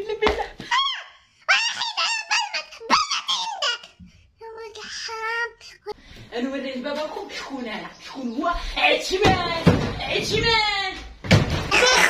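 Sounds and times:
high-pitched human squealing: 0.7s - 3.9s, 11.7s - 12.0s.

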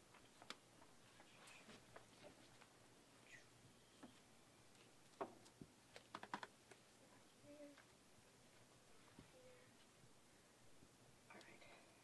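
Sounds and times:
books tapping and clicking: 5.1s - 6.8s.

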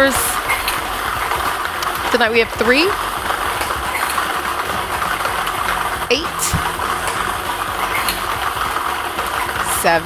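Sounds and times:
blower fan running: 0.0s - 10.0s
plastic balls churning and rattling: 0.0s - 10.0s.

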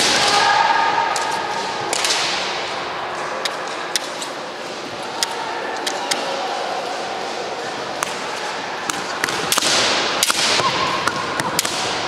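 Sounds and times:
bamboo swords clacking: 8.9s - 12.0s.

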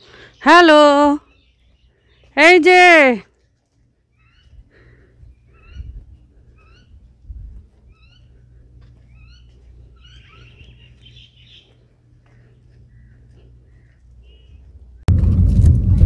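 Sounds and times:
bird calling: 4.1s - 7.1s, 7.8s - 15.0s.

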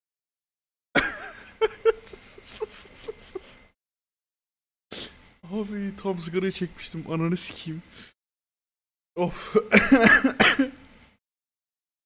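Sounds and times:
man coughing: 1.0s - 2.5s, 9.4s - 10.8s.

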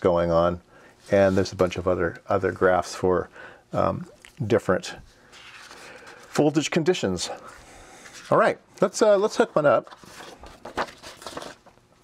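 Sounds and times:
paper sheets rustling: 5.2s - 6.7s, 7.3s - 11.8s.

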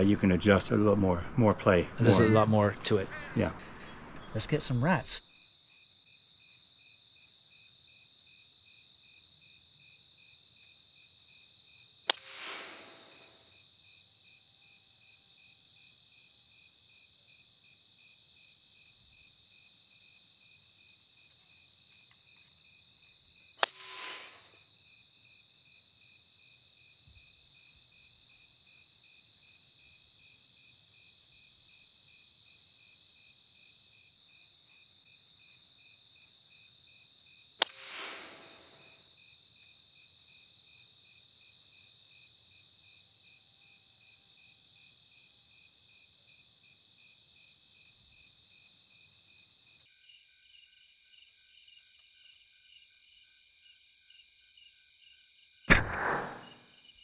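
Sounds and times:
crickets chirping: 0.0s - 55.6s
air rifle shots: 12.1s - 13.0s, 37.6s - 38.8s, 55.7s - 56.6s.

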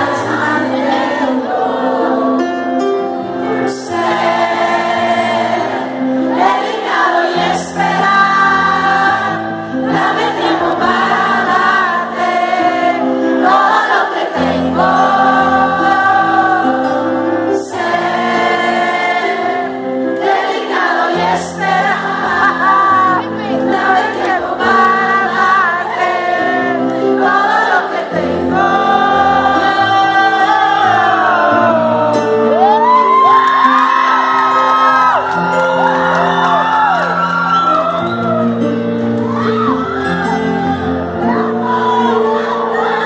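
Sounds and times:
woman singing: 0.0s - 5.6s, 20.2s - 33.6s.

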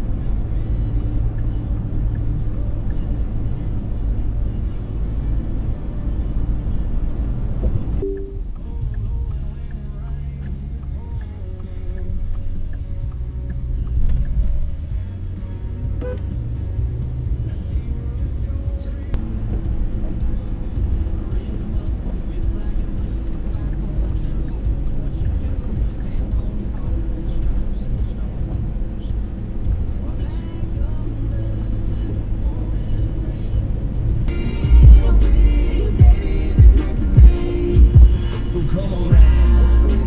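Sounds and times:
car engine and road rumble: 0.0s - 40.0s
music playing: 0.0s - 40.0s.

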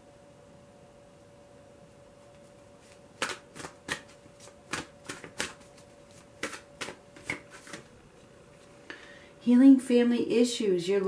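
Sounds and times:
faint steady hum: 0.0s - 11.0s
cards being shuffled: 2.3s - 7.9s.

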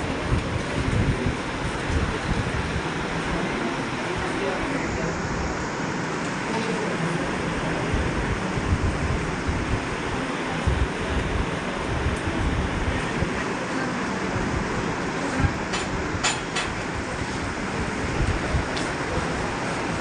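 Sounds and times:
steady rushing noise: 0.0s - 20.0s.

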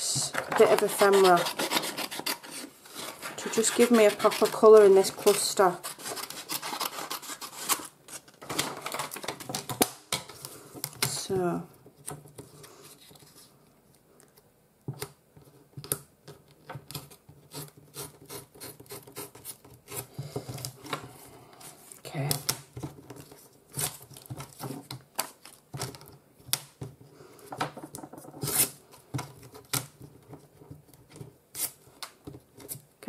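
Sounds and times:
paper tearing: 0.7s - 7.9s.

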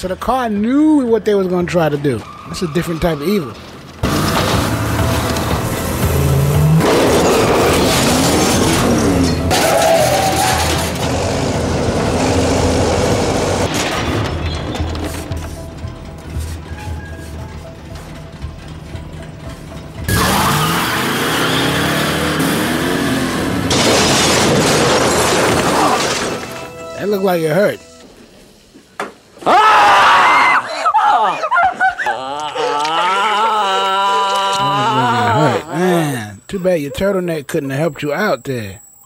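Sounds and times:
horror film score: 0.0s - 26.9s, 32.0s - 36.5s
loud car crash: 2.2s - 15.2s, 20.1s - 26.9s
car engine running: 4.0s - 14.3s.

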